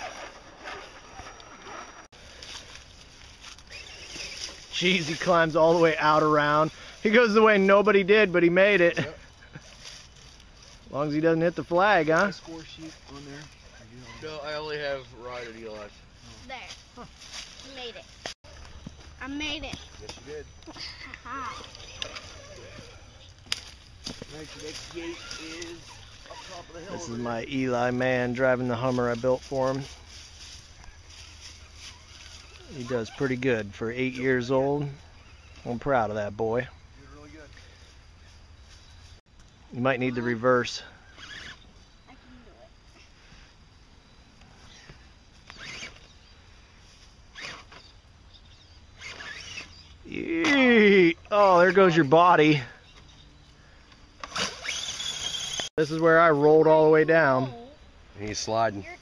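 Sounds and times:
tyres scrabbling on rock: 0.0 - 2.8
electric motor whirring: 45.5 - 46.1, 49.0 - 49.9, 54.2 - 55.7.

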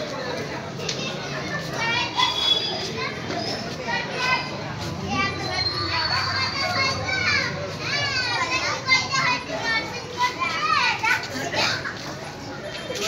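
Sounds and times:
children calling and chattering: 0.0 - 13.0
crowd chatter: 0.0 - 13.0.

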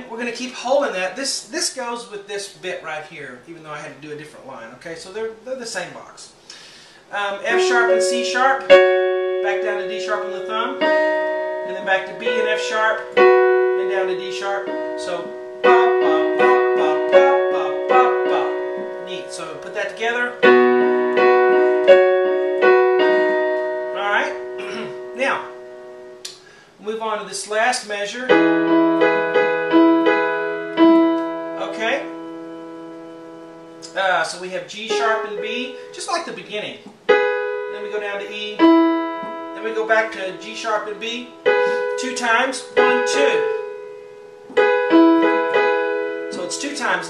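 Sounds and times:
piano chords ringing: 0.0 - 3.5, 7.1 - 47.0.

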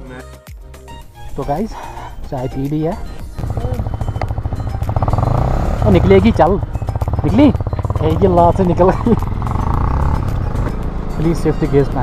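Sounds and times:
motorcycle engines pulling away: 2.1 - 12.0.

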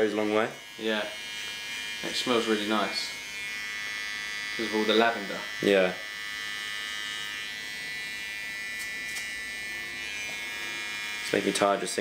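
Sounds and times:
electric hair clippers buzzing: 0.0 - 12.0.

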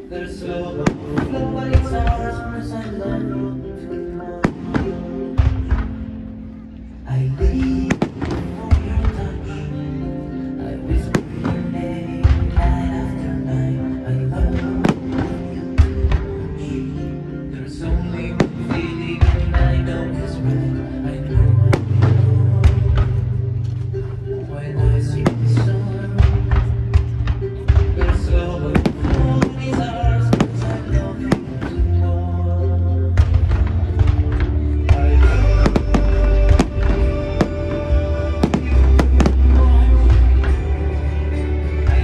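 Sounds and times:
background music: 0.0 - 42.0.

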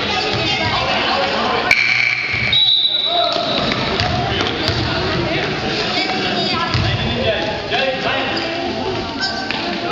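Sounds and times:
voices of players and spectators: 0.0 - 9.9.

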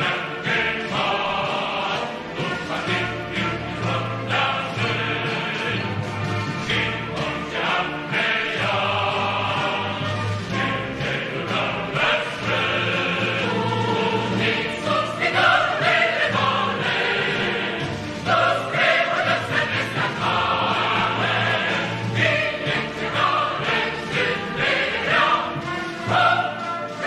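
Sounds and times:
choir singing long held notes: 0.0 - 6.0, 6.6 - 27.0
musical accompaniment: 0.0 - 27.0.

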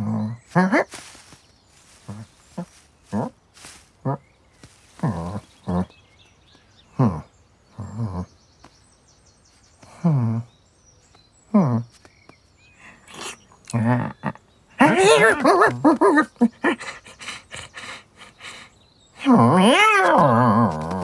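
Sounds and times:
hissy rustles: 0.5 - 5.7
person imitating cat meows: 19.2 - 20.8.

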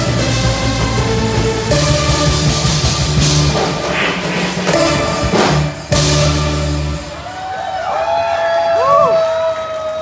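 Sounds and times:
drum and cymbal hit: 0.0 - 7.6
live rock band playing: 0.0 - 8.0
audience shouting and whooping: 7.1 - 10.0.

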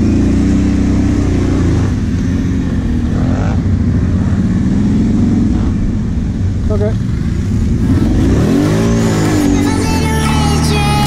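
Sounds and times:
atv engine revving: 0.0 - 11.0
music: 9.5 - 11.0.

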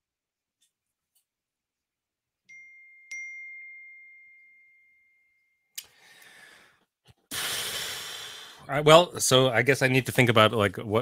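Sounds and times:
small bell chime ringing: 2.5 - 5.8.

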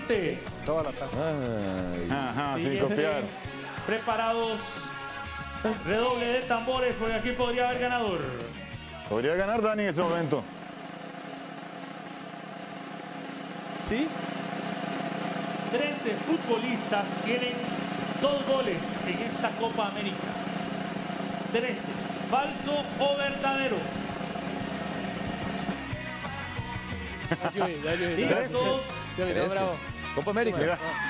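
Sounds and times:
suspense music bed: 10.1 - 29.3
low electronic drone: 10.4 - 27.4
voices: 15.7 - 24.3, 27.3 - 31.0.

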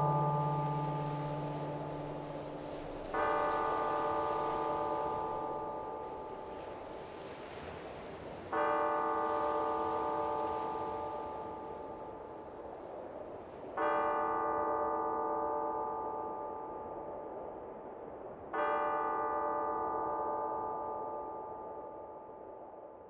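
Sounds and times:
struck metal instrument ringing: 0.0 - 3.1.

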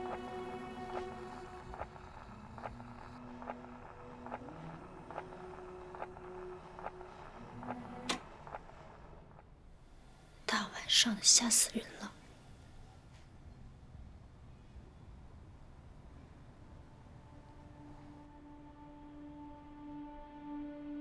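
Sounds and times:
record playing slow held notes: 0.0 - 10.6, 12.3 - 20.9.

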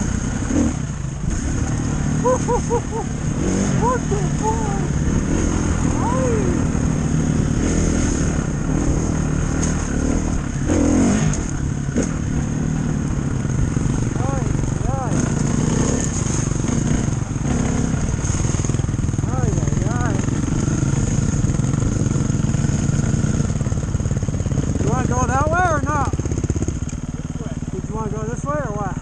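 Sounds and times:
dirt bike engine revving: 0.0 - 29.0.

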